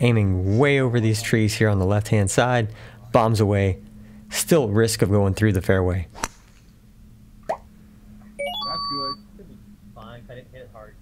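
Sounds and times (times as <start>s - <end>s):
rising chime-like notes: 8.4s - 9.2s.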